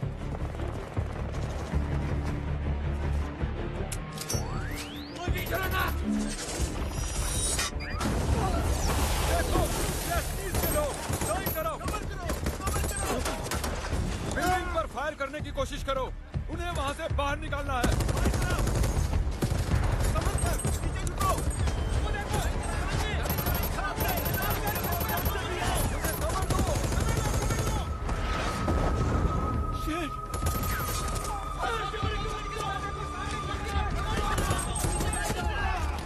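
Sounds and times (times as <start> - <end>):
rapid automatic gunfire: 11.0 - 13.8, 17.8 - 20.6, 22.7 - 27.9
people shouting: 31.0 - 36.0.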